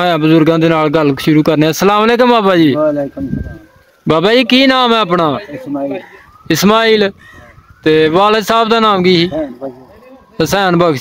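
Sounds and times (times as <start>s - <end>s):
man speaking: 0.0s - 7.2s, 7.8s - 11.0s.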